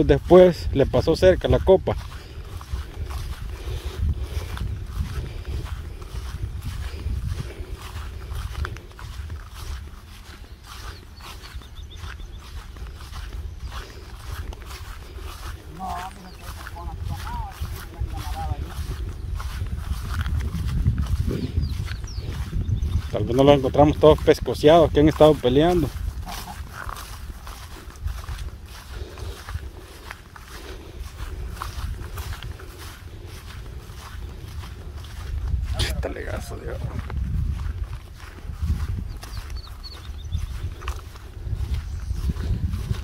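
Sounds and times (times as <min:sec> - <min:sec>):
footsteps swishing through grass: 0:00.0 - 0:43.0
wind rumbling on microphone: 0:00.0 - 0:43.0.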